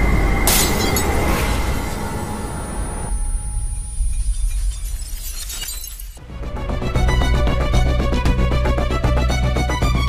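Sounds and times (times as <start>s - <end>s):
glass shattering: 0.5s - 1.3s, 3.6s - 6.2s.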